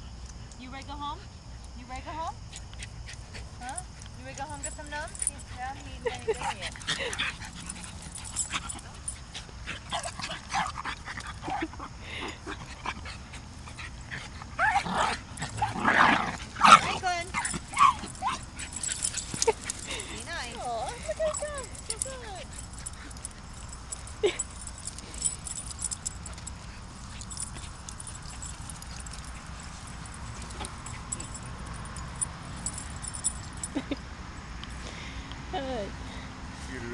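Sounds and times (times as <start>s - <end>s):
small dogs playing rough: 2.4s - 34.0s.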